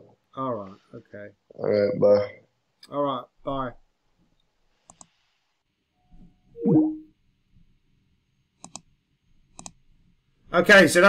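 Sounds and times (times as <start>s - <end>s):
computer mouse clicking: 4.4s - 5.2s, 8.6s - 8.9s, 9.5s - 9.8s.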